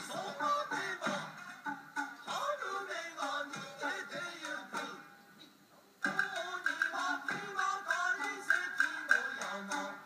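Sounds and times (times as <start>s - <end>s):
percussive strikes: 6.0s - 9.9s.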